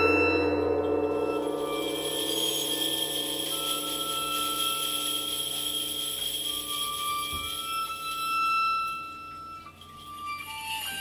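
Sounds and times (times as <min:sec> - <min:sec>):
metallic percussion ringing: 0:00.0 - 0:11.0.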